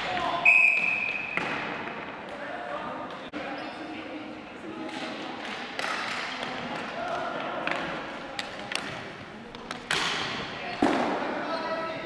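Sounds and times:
players' voices: 0.0 - 12.0
referee's whistle blast: 0.4 - 1.3
knocks of sticks and ball: 9.6 - 11.2.

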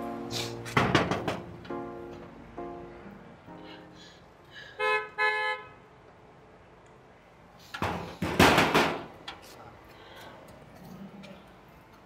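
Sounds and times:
car horn tooting: 4.8 - 5.8.

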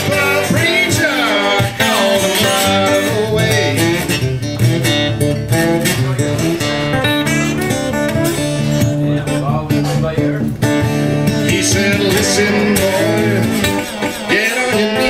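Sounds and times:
blues slide guitar: 0.0 - 15.0.

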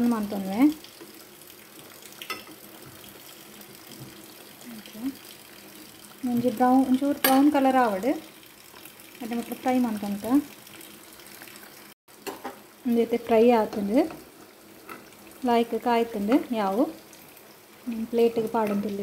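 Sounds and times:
fritters sizzling in hot oil: 0.0 - 19.0.

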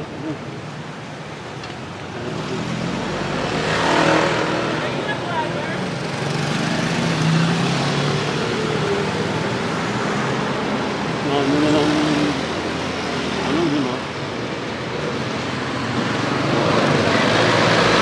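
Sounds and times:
traffic engine hum: 0.0 - 18.0
vehicle passing: 2.2 - 14.1.

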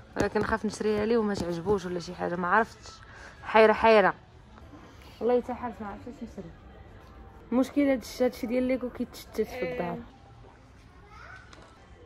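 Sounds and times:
faint shop background: 0.0 - 12.0
distant child's voice: 10.8 - 11.8.

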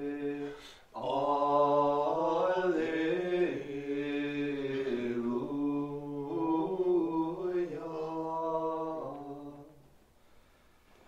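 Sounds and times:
liturgical chant: 0.0 - 10.0.

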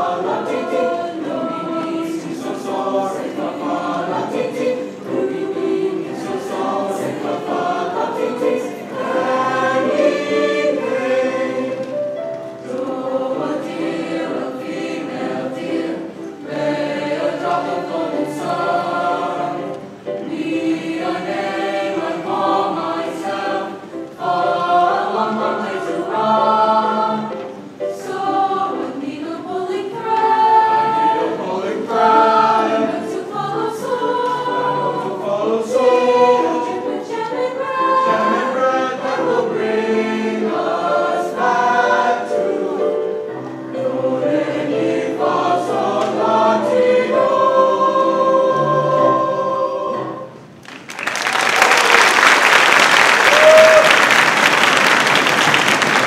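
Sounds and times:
chorus of students singing: 0.0 - 50.5.

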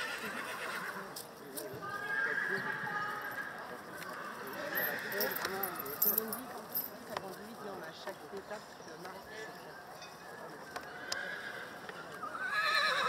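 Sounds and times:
horse whinnying: 0.0 - 1.1, 1.9 - 3.6, 10.9 - 13.0.

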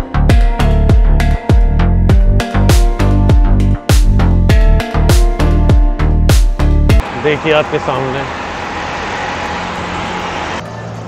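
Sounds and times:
low engine hum: 6.9 - 11.0
road traffic noise: 6.9 - 11.0.

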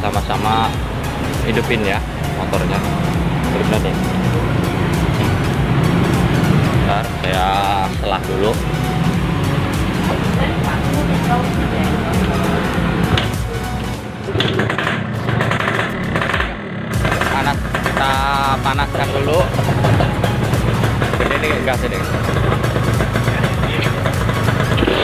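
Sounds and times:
motorcycle engines idling: 0.0 - 25.0.

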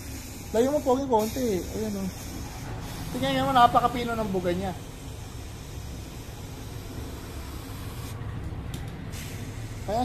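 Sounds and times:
air hiss from spray gun: 0.0 - 3.3, 4.7 - 8.2, 9.1 - 10.0.

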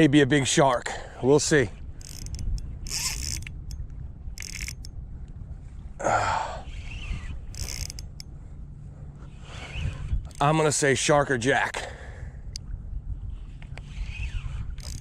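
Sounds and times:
wind on microphone: 1.4 - 10.8, 12.1 - 15.0
fishing reel gear and drag: 1.7 - 5.0, 6.6 - 8.4, 9.2 - 10.8, 13.3 - 15.0.

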